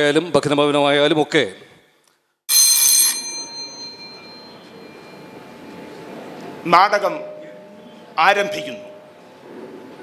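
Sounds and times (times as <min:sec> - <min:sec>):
bell ringing: 0:02.5 - 0:05.8, 0:06.9 - 0:09.3.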